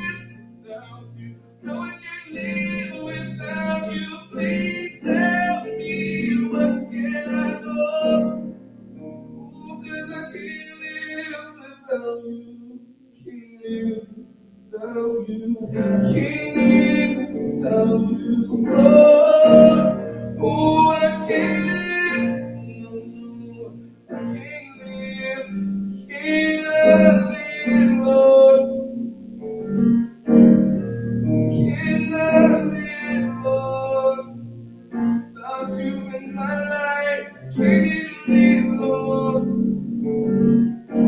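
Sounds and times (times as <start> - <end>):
electronic organ chords: 0.0 - 41.0
slow electric keyboard music: 0.0 - 41.0.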